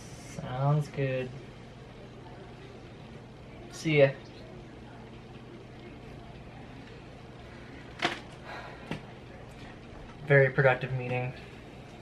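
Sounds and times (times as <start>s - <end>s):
room tone hum and hiss: 0.0s - 12.0s.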